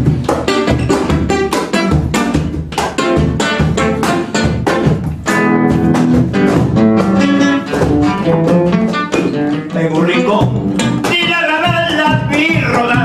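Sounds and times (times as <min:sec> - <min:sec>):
acoustic guitar playing: 0:00.0 - 0:13.0.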